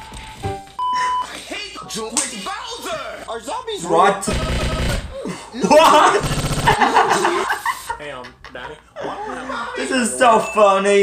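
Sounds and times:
boy laughing: 0:05.2 - 0:07.9.

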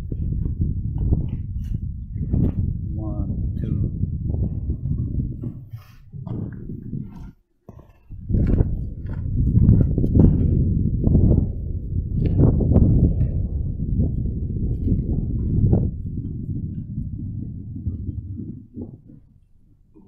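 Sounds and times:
wind buffeting microphone: 0:00.0 - 0:20.0
footsteps on gravel track: 0:06.2 - 0:10.7.

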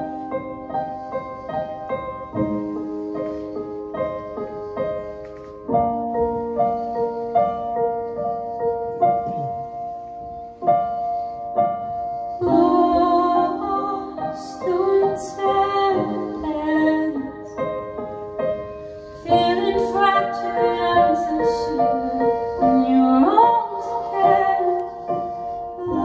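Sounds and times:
electronic keyboard accompaniment: 0:00.0 - 0:26.0
woman singing into microphone: 0:12.4 - 0:17.6, 0:19.2 - 0:25.2, 0:25.8 - 0:26.0.

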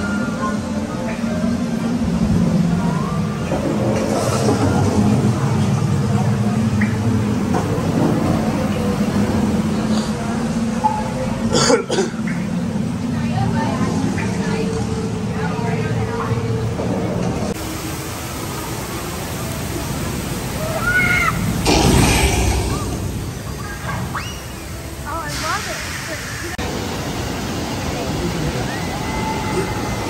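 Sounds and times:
faint voices: 0:00.0 - 0:17.6
rushing water down chute: 0:17.4 - 0:30.0
low hum: 0:21.4 - 0:25.2.

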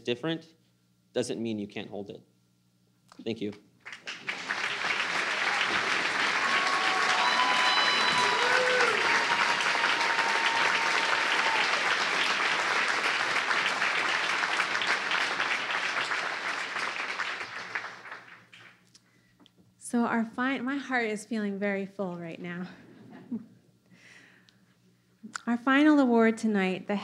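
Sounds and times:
audience applauding: 0:03.8 - 0:18.8
crowd calling out: 0:04.2 - 0:17.1.

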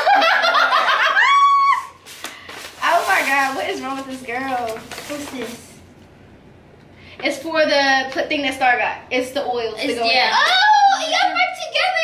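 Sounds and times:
women laughing: 0:00.0 - 0:02.0.

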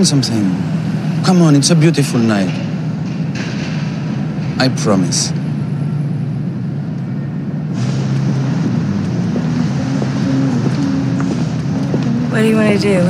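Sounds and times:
low rumble of traffic: 0:00.0 - 0:13.0.

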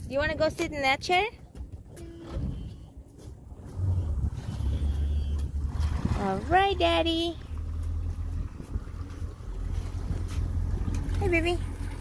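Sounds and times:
outboard motor idling: 0:01.5 - 0:12.0.

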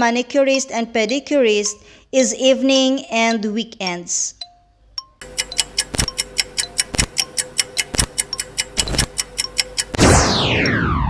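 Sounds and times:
fast timer ticking: 0:04.4 - 0:10.8.

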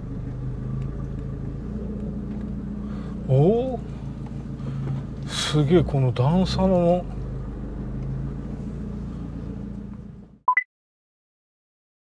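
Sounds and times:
car engine and road noise: 0:00.0 - 0:10.5.

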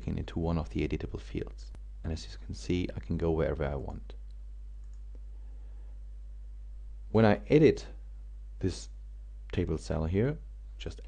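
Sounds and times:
steady low hum: 0:00.0 - 0:11.0
computer mouse clicks: 0:04.2 - 0:05.3.

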